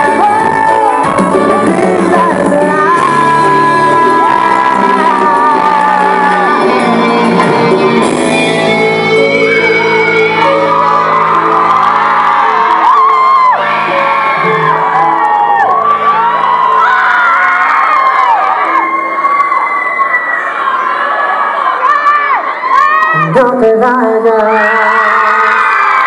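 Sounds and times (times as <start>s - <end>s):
crowd cheering and whooping: 0.0s - 23.4s, 24.3s - 26.0s.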